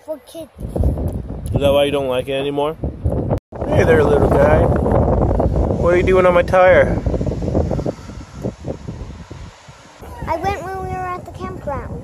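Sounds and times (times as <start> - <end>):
wind buffeting microphone: 0.2 - 12.0
low bumps: 0.6 - 12.0.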